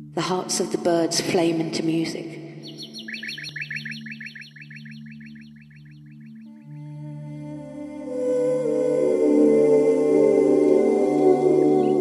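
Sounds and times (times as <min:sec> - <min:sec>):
songbird trilling: 0:02.6 - 0:06.6.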